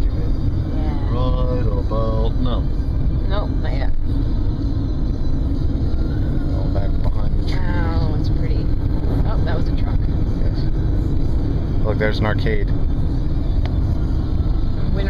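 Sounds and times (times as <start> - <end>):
car driving heard from inside: 0.0 - 15.0.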